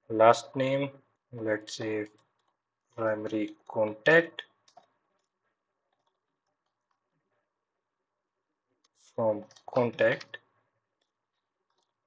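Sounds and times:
faint keyboard typing clicks: 0:02.0 - 0:03.7, 0:04.4 - 0:07.0, 0:08.8 - 0:10.4, 0:11.0 - 0:12.0.

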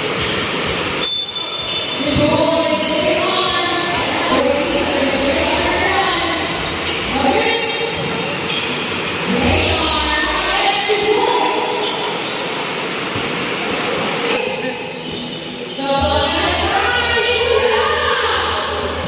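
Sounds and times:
people talking and calling out: 0:01.4 - 0:12.8, 0:13.6 - 0:19.0.

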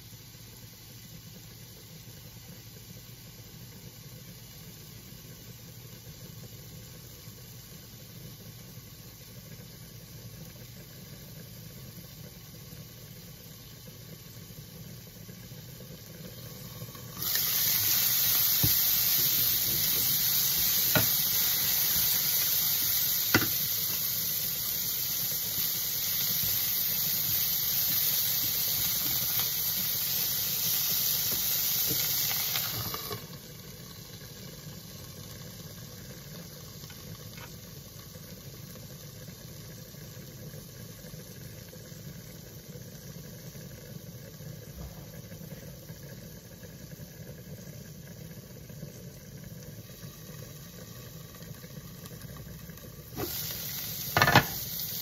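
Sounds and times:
cabbage sizzling in a frying pan: 0:00.0 - 0:55.0.

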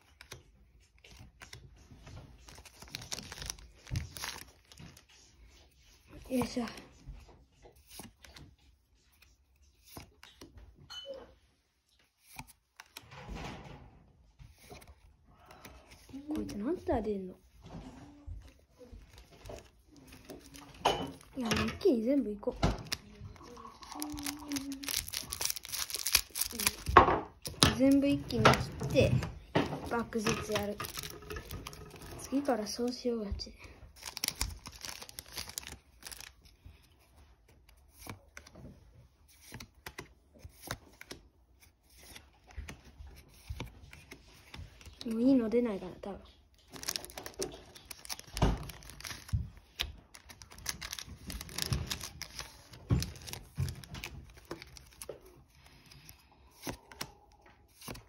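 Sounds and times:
cards clicking and tapping: 0:00.0 - 0:05.0, 0:24.1 - 0:32.0, 0:34.0 - 0:38.7, 0:39.3 - 0:45.1, 0:46.7 - 0:58.0
cards snapping and tapping: 0:57.7 - 0:58.0.

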